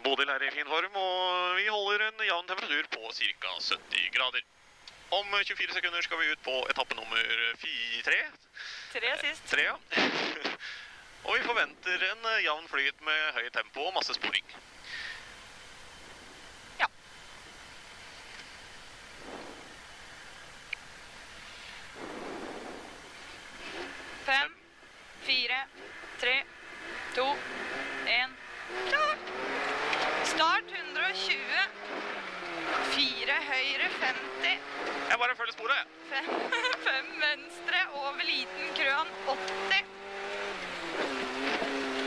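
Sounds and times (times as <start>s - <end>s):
rally car engine revving: 19.0s - 20.2s, 21.3s - 42.0s
car accelerating hard: 25.7s - 35.2s, 35.8s - 42.0s.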